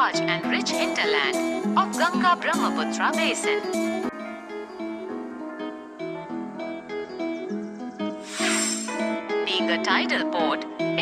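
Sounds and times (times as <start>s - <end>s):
plucked instrumental music: 0.0s - 11.0s
hissing whoosh: 8.2s - 9.2s.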